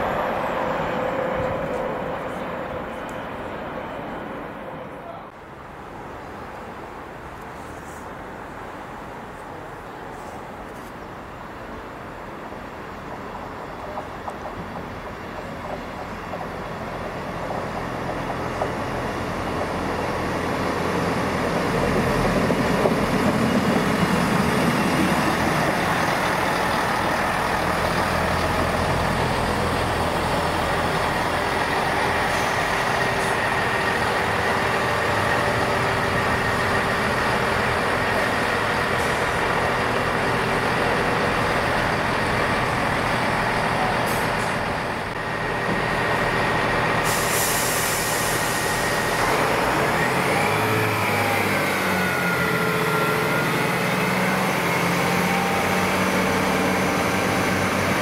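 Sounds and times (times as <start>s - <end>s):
diesel train engine: 0.0s - 7.5s, 8.1s - 58.0s
air hiss: 47.0s - 49.3s.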